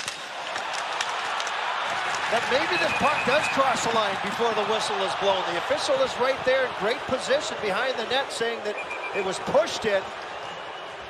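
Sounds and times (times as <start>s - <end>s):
crowd hubbub in arena: 0.0s - 11.0s.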